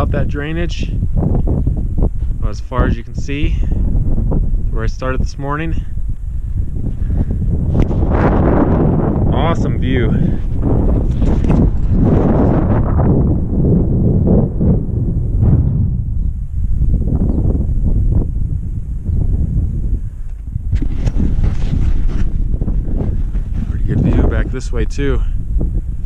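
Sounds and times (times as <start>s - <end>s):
wind buffeting microphone: 0.0s - 26.0s
crackling rustles: 10.3s - 12.6s, 20.2s - 23.8s.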